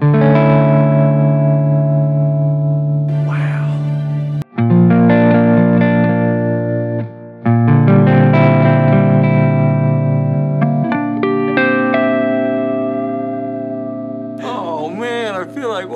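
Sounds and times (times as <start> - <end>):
electric guitar chords: 0.0 - 15.9
man speaking: 3.1 - 4.0, 14.4 - 15.9.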